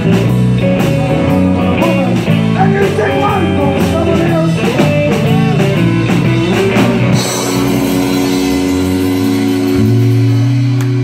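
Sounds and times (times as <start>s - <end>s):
bass guitar notes: 0.0s - 11.0s
electric guitar chords: 0.0s - 11.0s.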